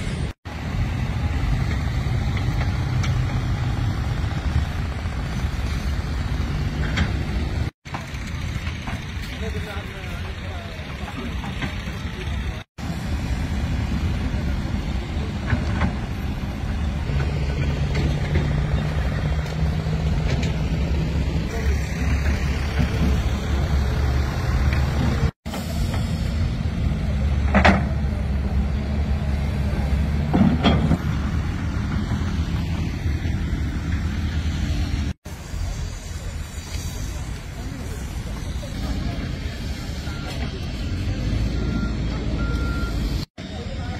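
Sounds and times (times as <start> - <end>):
heavy vehicle engines rumbling: 0.0 - 43.9
metal knocks and clanks: 30.2 - 31.1.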